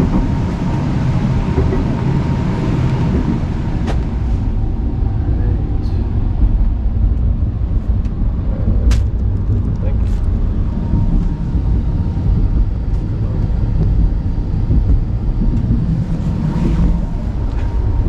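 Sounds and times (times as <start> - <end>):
train carriage rumble: 0.0 - 18.0.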